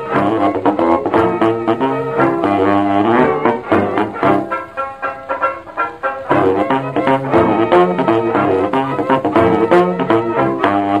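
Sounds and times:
dance orchestra playing: 0.0 - 11.0.

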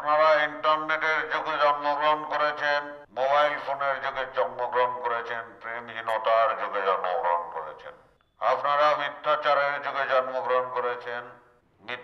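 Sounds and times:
man calling through megaphone: 0.0 - 12.0.

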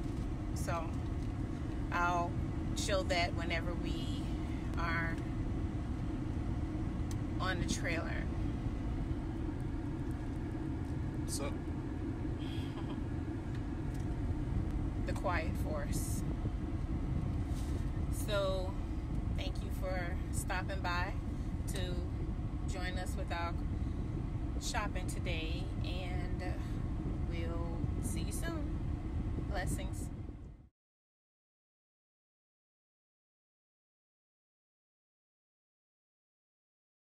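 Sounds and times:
car interior low rumble: 0.0 - 30.7
woman speaking: 0.6 - 1.0, 1.9 - 5.2, 7.4 - 8.3, 15.1 - 16.2, 18.1 - 18.8, 19.4 - 22.1, 22.7 - 23.6, 24.6 - 28.7, 29.5 - 30.1.

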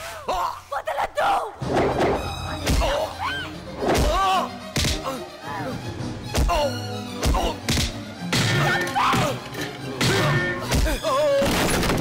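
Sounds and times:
background film score: 0.0 - 12.0
people shouting: 2.5 - 5.8, 8.3 - 11.4.

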